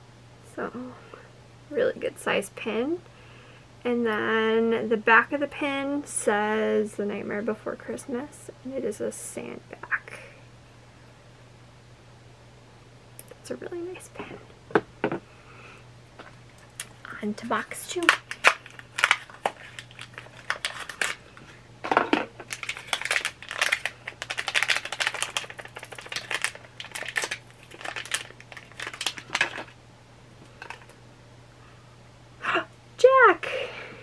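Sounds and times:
packaging crinkling and tearing: 17.9 - 21.5, 22.4 - 29.8.

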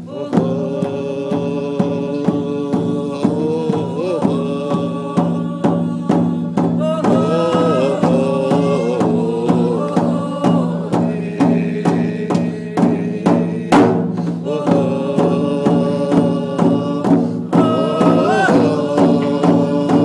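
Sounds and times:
hand drum beating: 0.0 - 20.0
woman singing a chant: 0.0 - 20.0.

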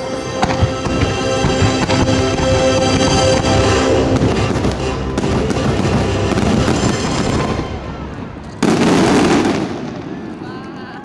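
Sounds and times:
fireworks bangs and crackle: 0.3 - 11.0.

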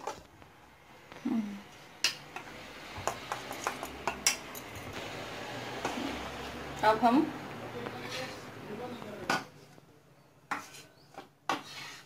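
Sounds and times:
spoon clinking against metal bowl: 3.1 - 4.9.

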